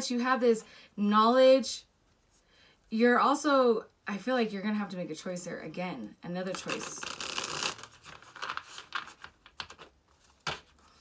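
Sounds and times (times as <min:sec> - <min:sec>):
cards being shuffled by hand: 0:06.5 - 0:11.0.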